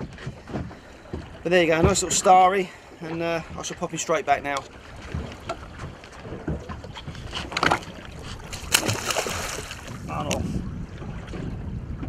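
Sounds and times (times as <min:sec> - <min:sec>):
water splashing against boat: 0:00.0 - 0:12.0.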